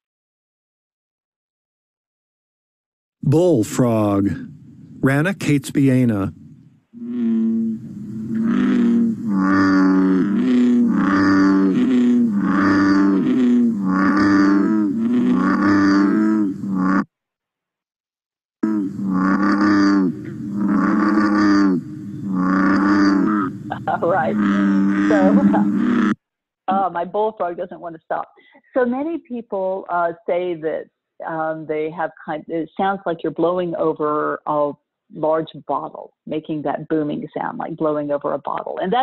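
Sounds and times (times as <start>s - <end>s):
bullfrog deep booming calls: 5.8s - 17.1s, 18.6s - 26.2s.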